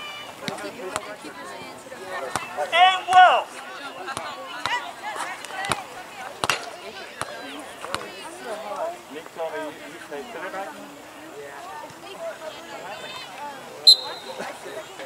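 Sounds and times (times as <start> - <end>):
voices calling and chattering: 0.0 - 15.0.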